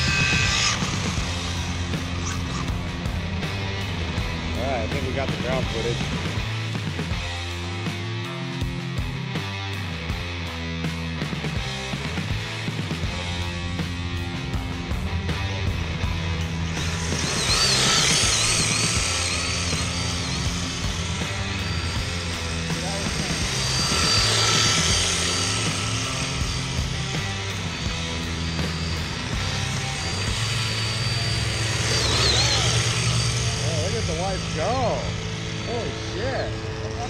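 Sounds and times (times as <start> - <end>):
rc car motors whining: 0.0 - 7.7, 11.4 - 37.0
rock music with bass line: 0.0 - 37.0.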